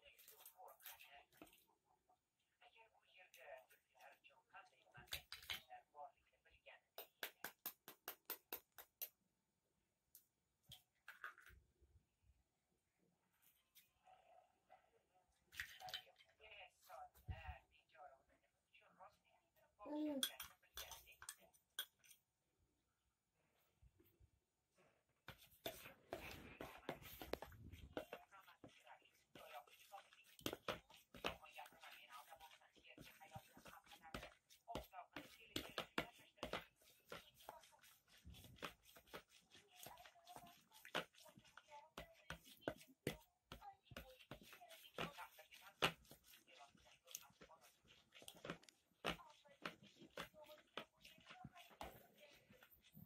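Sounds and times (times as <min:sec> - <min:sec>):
spoon beating eggs in plastic bowl: 0:00.0 - 0:09.4, 0:15.5 - 0:16.4, 0:20.1 - 0:22.3, 0:24.8 - 0:53.0.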